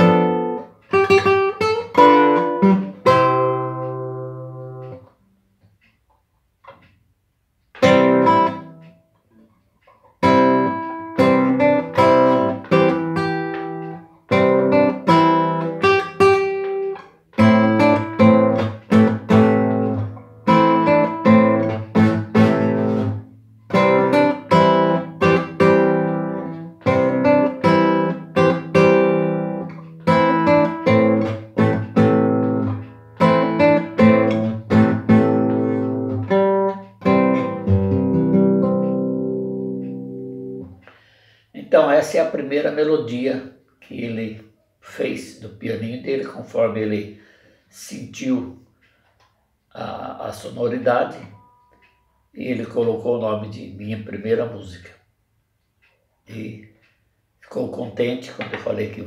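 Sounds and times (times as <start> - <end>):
classical guitar melody: 0.0 - 5.2, 7.7 - 40.9.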